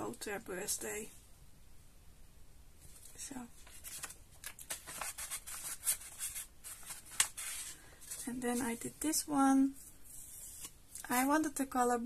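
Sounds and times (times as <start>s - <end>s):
paper page rustling: 2.8s - 8.9s, 9.8s - 11.2s.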